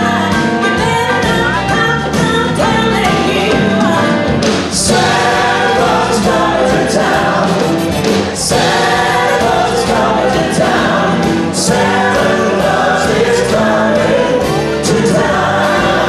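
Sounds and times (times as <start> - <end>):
live band playing: 0.0 - 16.0
group singing: 2.1 - 16.0.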